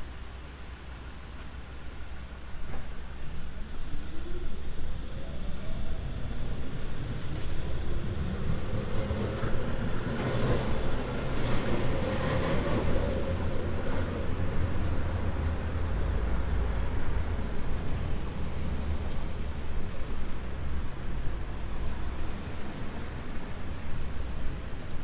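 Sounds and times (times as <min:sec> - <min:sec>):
low traffic rumble: 0:00.0 - 0:25.0
cars passing on wet road: 0:06.4 - 0:25.0.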